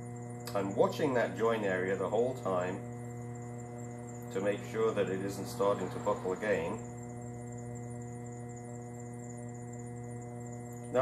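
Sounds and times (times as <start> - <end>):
potter's wheel motor humming: 0.0 - 11.0.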